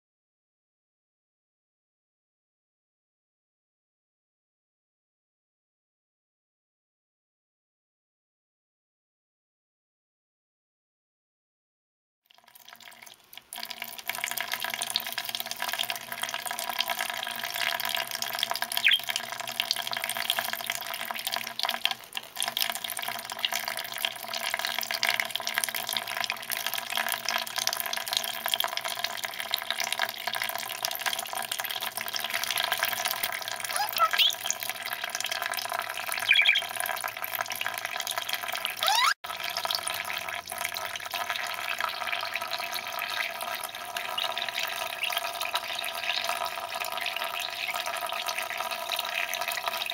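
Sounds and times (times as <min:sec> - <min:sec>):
tap water running into dish: 0:12.3 - 0:49.9
bird chirps: 0:18.8 - 0:19.1, 0:33.7 - 0:34.4, 0:36.2 - 0:36.7, 0:38.8 - 0:39.2.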